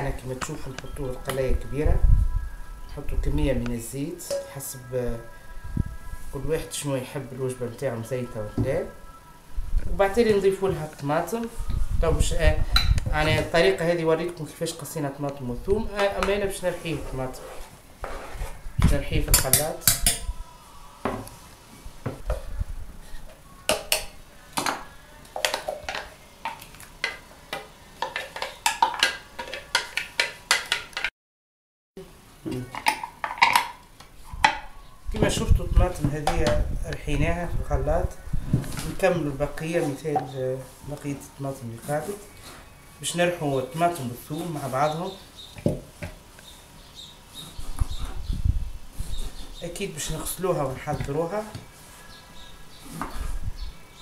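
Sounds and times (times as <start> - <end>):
spoon scraping and knocking: 16.0 - 20.3, 25.4 - 31.1.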